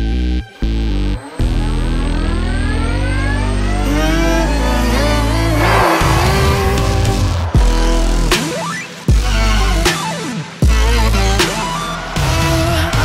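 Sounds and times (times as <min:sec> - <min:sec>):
electric race car whining: 0:00.7 - 0:09.0
rush of noise: 0:04.9 - 0:09.4.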